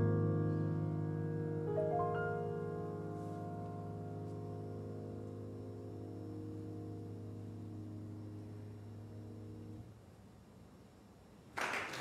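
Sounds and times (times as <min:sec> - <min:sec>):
piano chord ringing: 0:00.0 - 0:09.8.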